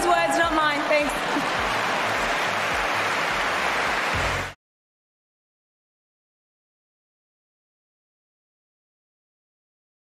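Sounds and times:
audience applauding: 0.0s - 4.6s.

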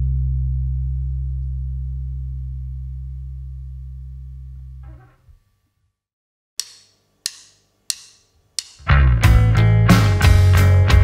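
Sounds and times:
bass guitar ringing: 0.0s - 5.4s, 8.8s - 11.0s
electric guitar ringing: 0.0s - 5.4s.

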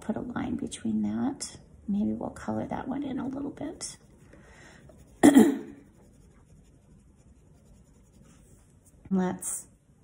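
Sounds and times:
woman clearing her throat: 5.2s - 5.8s.

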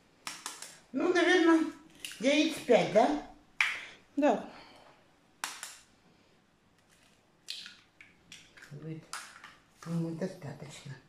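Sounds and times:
egg shell cracking clicks: 0.2s - 0.8s, 5.4s - 5.9s.

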